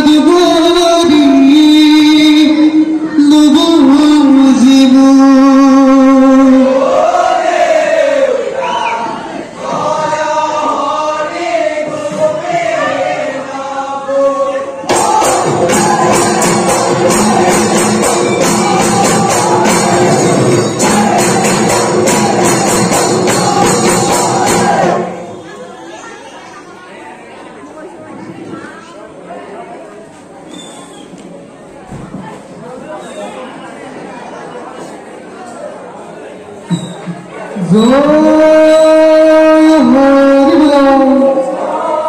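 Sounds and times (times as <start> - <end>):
chatter of voices: 0.0 - 42.0
group chanting in unison: 6.5 - 25.2, 41.0 - 42.0.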